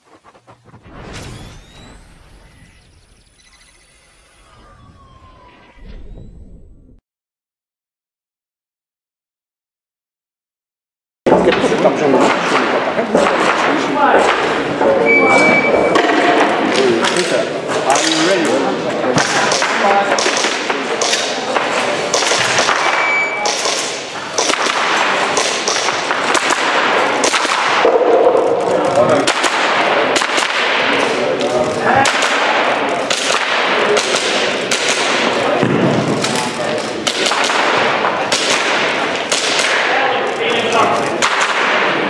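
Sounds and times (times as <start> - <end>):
hall noise: 0.0 - 6.5
high beep: 0.0 - 6.6, 15.0 - 16.2, 22.9 - 23.5
airsoft pistol shots echoing: 22.1 - 27.8, 37.0 - 39.9.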